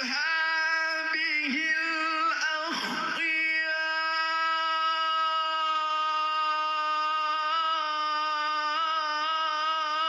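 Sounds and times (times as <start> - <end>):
man singing a long held note: 0.0 - 10.0.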